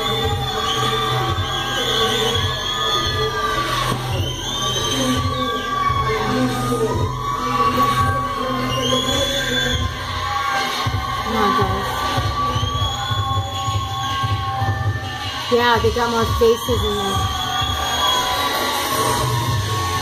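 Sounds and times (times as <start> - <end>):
crowd cheering and shouting: 0.0 - 20.0
hip hop music with heavy beat: 0.0 - 20.0.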